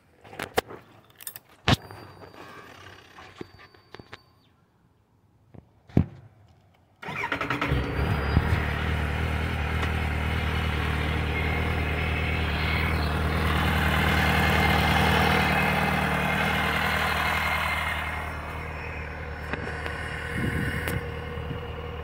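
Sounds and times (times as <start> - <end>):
electric starter cranking: 7.0 - 10.6
motorcycle engine idling: 8.2 - 22.0.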